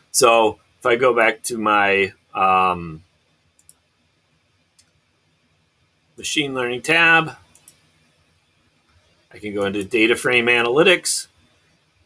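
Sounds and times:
faint computer mouse clicks: 0:03.6 - 0:03.8, 0:07.5 - 0:07.9.

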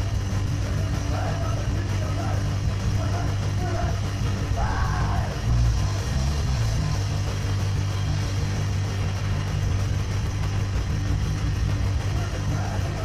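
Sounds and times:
bass guitar: 0:00.0 - 0:13.0
drums: 0:00.0 - 0:13.0
electric guitars: 0:00.0 - 0:13.0.

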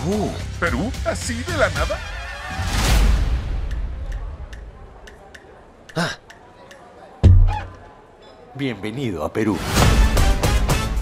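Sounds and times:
music: 0:00.0 - 0:03.8, 0:09.6 - 0:11.0
clock-like ticking: 0:03.6 - 0:06.8.

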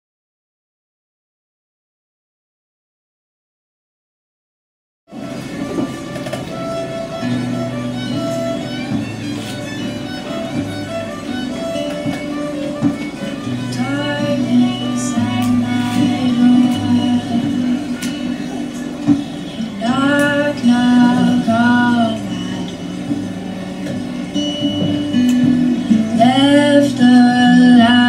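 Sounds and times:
acoustic guitar chords: 0:05.1 - 0:28.0.

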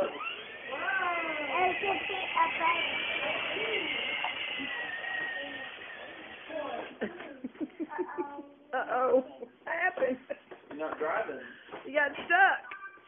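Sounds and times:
electric toy motor whining: 0:00.0 - 0:07.4
voices: 0:00.0 - 0:12.6.

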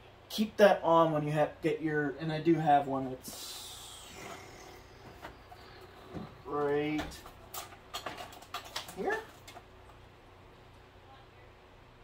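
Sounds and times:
cable bundle clicks and rustles: 0:05.2 - 0:10.0
person speaking: 0:06.0 - 0:07.2, 0:08.8 - 0:09.4.

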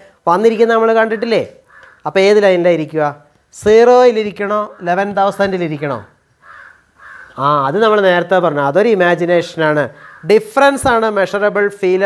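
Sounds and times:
man talking loudly: 0:00.0 - 0:06.1, 0:07.4 - 0:12.0
crow cawing: 0:01.6 - 0:02.1, 0:06.4 - 0:07.5, 0:09.9 - 0:10.4.

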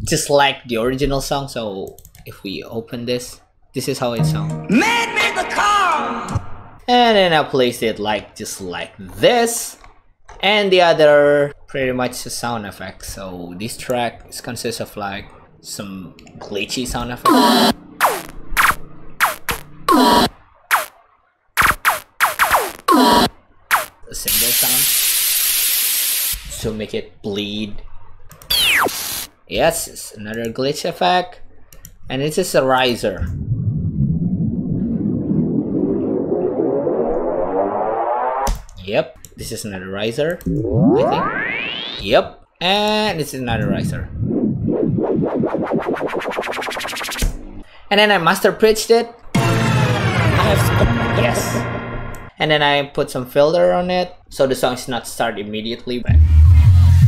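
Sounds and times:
electronic music synth riser: 0:04.2 - 0:06.8, 0:17.2 - 0:20.9, 0:21.6 - 0:24.0, 0:28.5 - 0:29.2, 0:33.3 - 0:38.5, 0:40.4 - 0:42.1, 0:43.5 - 0:47.4, 0:49.4 - 0:52.3, 0:56.1 - 0:57.0
glitchy electronic zaps: 0:17.3 - 0:21.0, 0:21.6 - 0:26.5.

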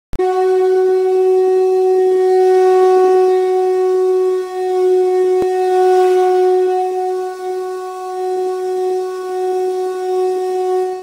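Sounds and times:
wind instrument long steady note: 0:00.1 - 0:11.0.

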